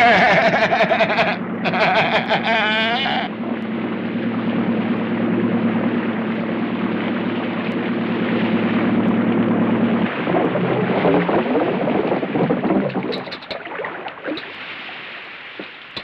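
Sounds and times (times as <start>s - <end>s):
outboard motor running: 0.0s - 16.0s.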